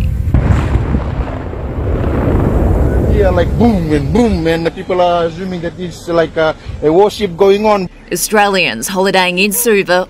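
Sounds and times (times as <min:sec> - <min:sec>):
deep volcanic eruption booms: 0:00.0 - 0:05.0.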